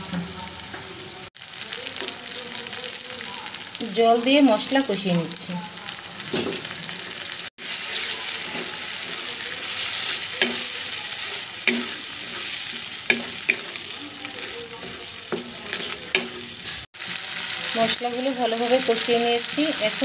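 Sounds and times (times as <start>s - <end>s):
spice paste sizzling: 0.0s - 20.0s
spatula scraping pan: 6.9s - 17.2s
spatula tapping pan: 10.0s - 16.6s.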